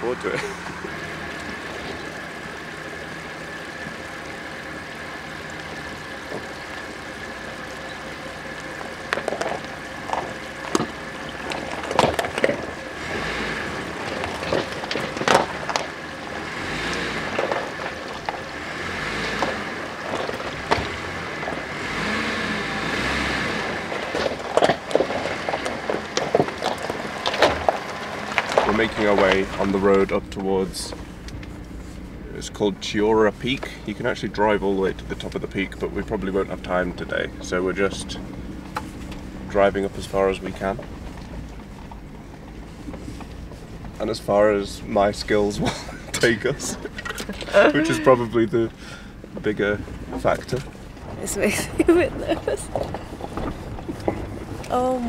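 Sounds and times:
car engine running: 0.0s - 55.0s
stones crunching under tyres: 0.0s - 55.0s.

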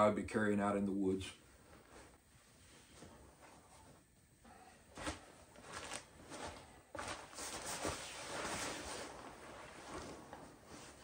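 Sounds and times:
blankets and sleeping pad rustling: 4.9s - 11.0s.

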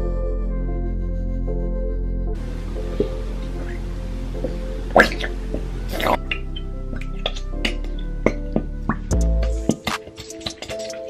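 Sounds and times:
classical background music: 0.0s - 11.0s
glue squelching from squeeze bottle: 9.2s - 11.0s.

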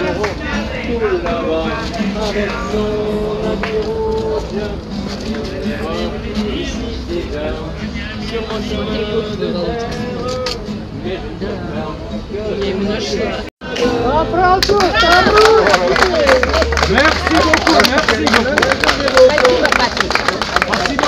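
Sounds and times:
murmur of crowd: 0.0s - 21.0s.

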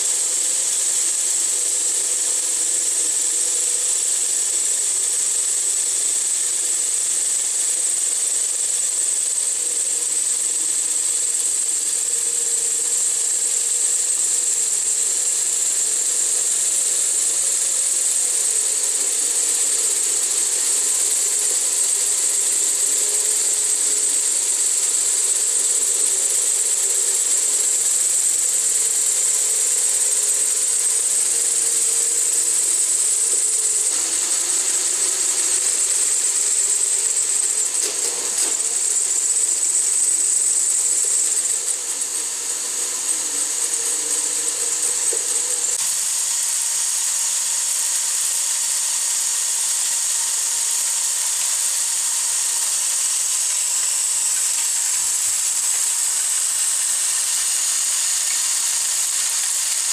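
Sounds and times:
high motor whine with rattling: 0.0s - 59.9s.

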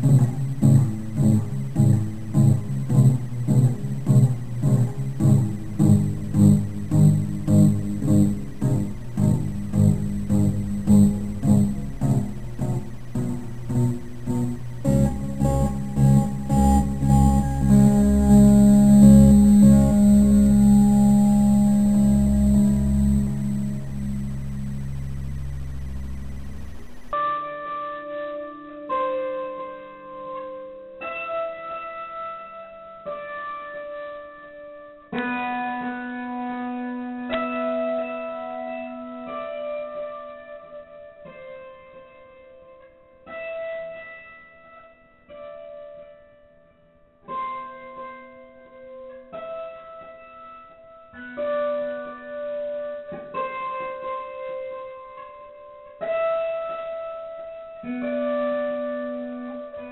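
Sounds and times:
slow piano chords: 0.0s - 27.2s.

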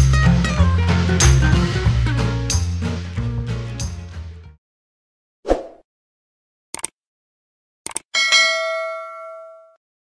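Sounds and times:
notification bell ding: 8.2s - 9.8s.

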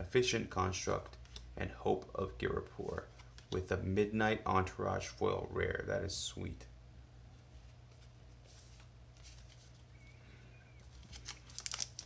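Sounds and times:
handling trading cards: 1.0s - 3.7s, 7.6s - 10.2s, 10.8s - 12.0s
plastic wrapper crinkling: 10.8s - 12.0s.

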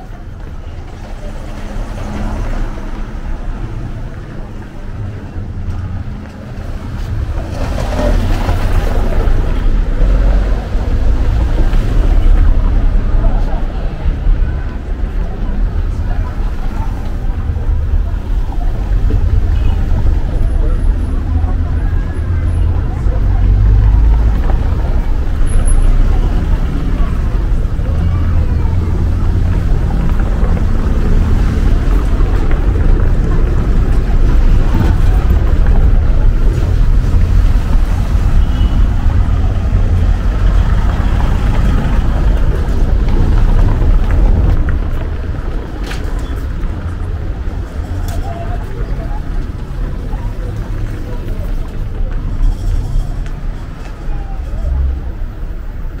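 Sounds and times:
street rumble: 0.0s - 56.0s.

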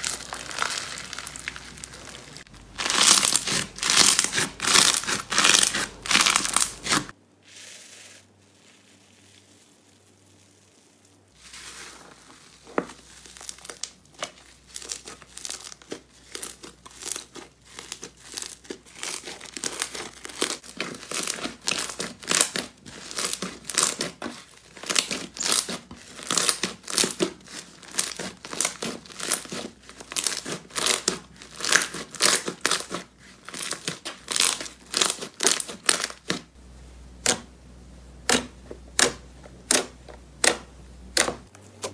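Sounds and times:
slime crackling and popping: 0.0s - 7.2s, 8.0s - 36.5s.

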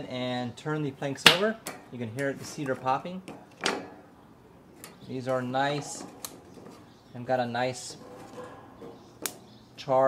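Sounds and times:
man speaking: 5.1s - 6.1s, 9.8s - 10.0s.

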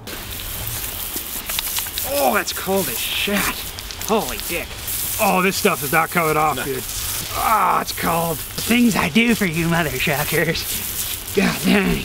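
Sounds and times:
hose nozzle spraying water: 0.0s - 12.0s.

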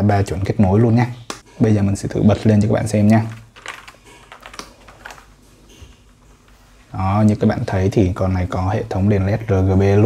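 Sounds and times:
keyboard clicks and taps: 3.6s - 5.2s.

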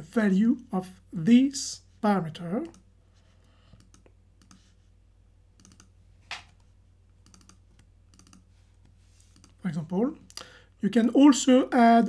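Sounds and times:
computer keyboard and mouse clicks: 3.7s - 4.7s, 5.6s - 8.5s, 9.3s - 9.6s.

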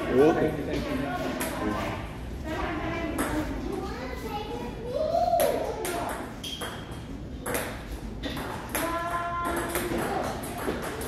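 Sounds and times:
table tennis ball hitting paddles: 5.8s - 11.0s.

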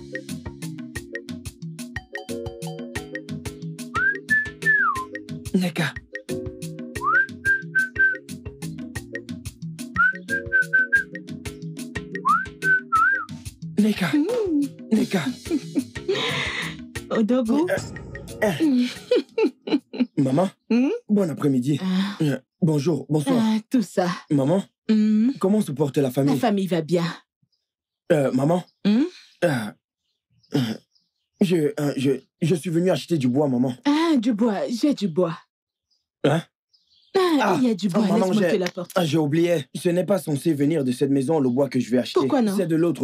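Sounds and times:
music with clicking beat: 0.0s - 19.4s
man whistling: 3.9s - 5.2s, 7.0s - 8.4s, 10.0s - 11.2s, 12.2s - 13.4s
man saying euh: 17.6s - 19.0s, 29.4s - 29.7s, 30.6s - 30.8s, 36.2s - 36.5s, 38.0s - 38.6s, 42.2s - 42.8s.

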